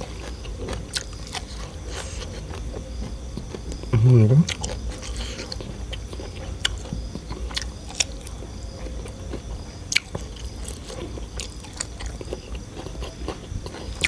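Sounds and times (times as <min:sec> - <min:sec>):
person chewing food: 0:00.0 - 0:14.0.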